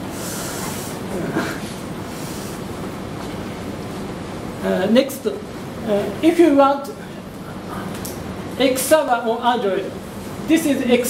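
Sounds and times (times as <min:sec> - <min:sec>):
microphone noise hiss: 0:00.0 - 0:11.0.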